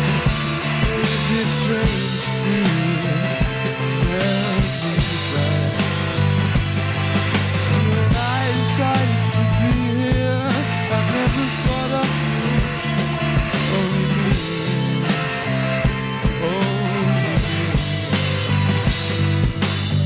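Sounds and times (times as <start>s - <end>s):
distorted electric guitar chords: 0.0s - 20.0s
electric bass: 0.0s - 20.0s.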